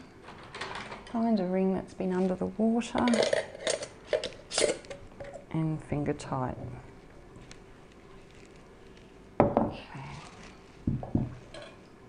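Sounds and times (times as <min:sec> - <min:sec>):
metal clinking and scraping on glass: 0:03.0 - 0:05.4, 0:11.4 - 0:11.8.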